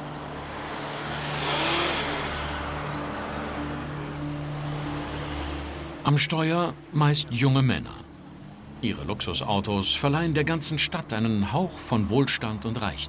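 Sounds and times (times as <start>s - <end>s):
car driving past: 0.0s - 6.0s.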